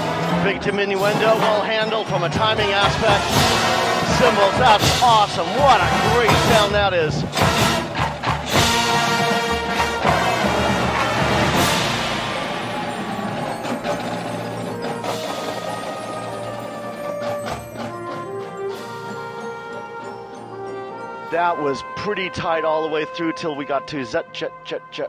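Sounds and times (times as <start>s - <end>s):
drum and bugle corps playing: 0.0s - 23.2s.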